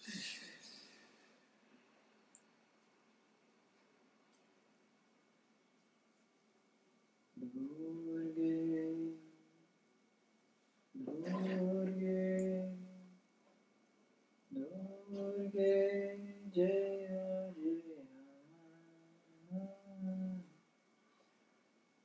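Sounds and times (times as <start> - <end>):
man chanting in long notes: 7.4 - 9.6, 14.5 - 20.6.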